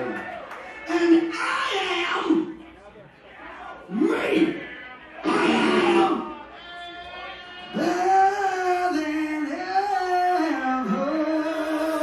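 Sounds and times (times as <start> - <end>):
man singing through pa: 7.7 - 12.0.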